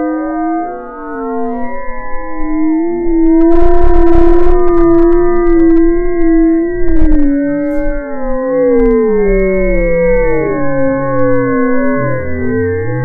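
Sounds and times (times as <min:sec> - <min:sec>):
warped howl-like electronic tone: 0:00.0 - 0:13.0
clicks: 0:03.2 - 0:07.9, 0:08.7 - 0:10.4.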